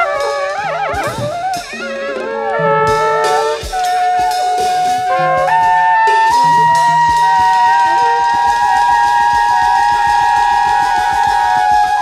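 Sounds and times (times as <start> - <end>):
voice holding long tones: 0.0 - 12.0
wind instruments long tones: 0.0 - 12.0.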